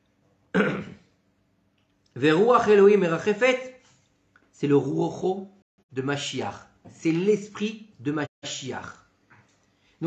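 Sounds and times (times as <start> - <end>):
man clearing throat: 0.5 - 1.2.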